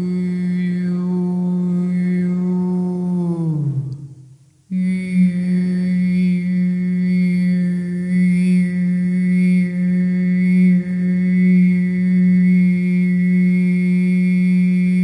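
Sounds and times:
woman toning a long held note: 0:00.0 - 0:15.0.

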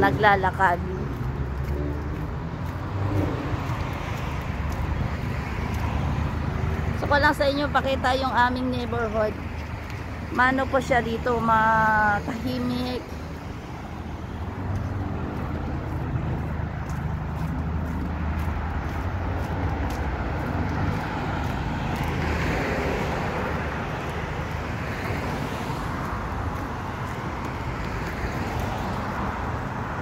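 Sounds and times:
road traffic rumble: 0:00.0 - 0:30.0
vehicles passing: 0:00.0 - 0:30.0.

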